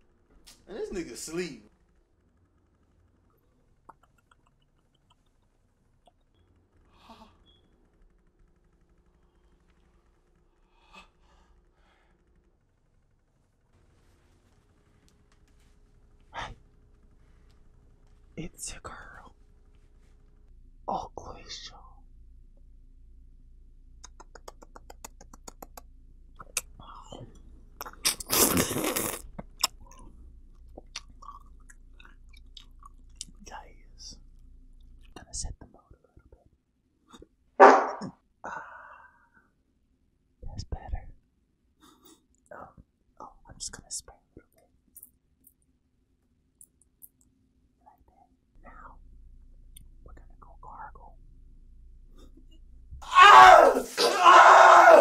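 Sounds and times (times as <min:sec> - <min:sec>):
low hum: 0:00.0 - 0:28.1, 0:29.3 - 0:36.9, 0:46.6 - 0:53.2
mouth clicks and lip smacks: 0:03.7 - 0:06.4, 0:24.0 - 0:26.9, 0:27.8 - 0:33.4
person yelling: 0:53.0 - 0:55.0.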